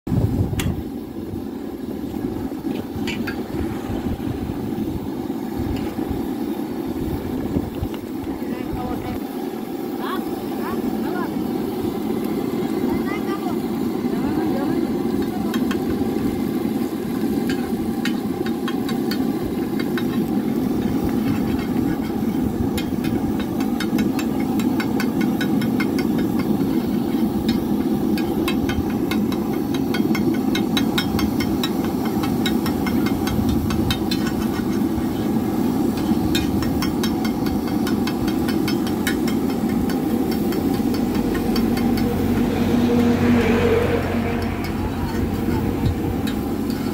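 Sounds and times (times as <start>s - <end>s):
egg sizzling on a griddle: 0.2s - 46.9s
spatula clicking and scraping: 17.2s - 34.9s, 35.9s - 42.5s, 46.2s - 46.9s
low rumbling noise: 40.0s - 46.9s.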